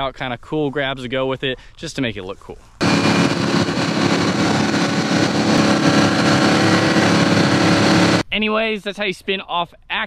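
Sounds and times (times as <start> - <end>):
motorboat engine running: 2.8 - 8.2
wind and water rushing: 2.8 - 8.2.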